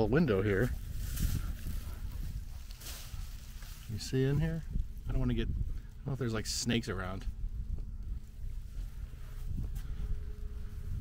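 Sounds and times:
wind rumble on microphone: 0:00.0 - 0:11.0
short rustle: 0:00.6 - 0:04.2.

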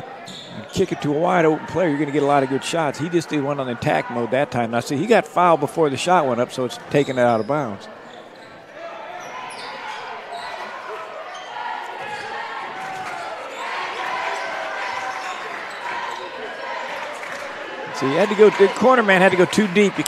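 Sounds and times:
crowd chatter: 0:00.0 - 0:20.0
players calling out: 0:00.0 - 0:20.0.

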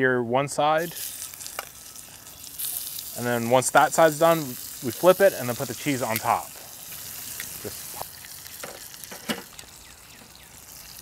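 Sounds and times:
burger patties sizzling in skillet: 0:00.8 - 0:11.0.

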